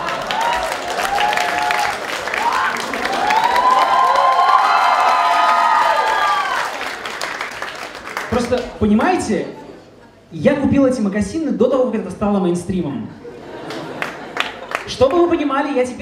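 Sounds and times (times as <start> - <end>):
audience clapping: 0.0 - 9.4, 13.6 - 15.3.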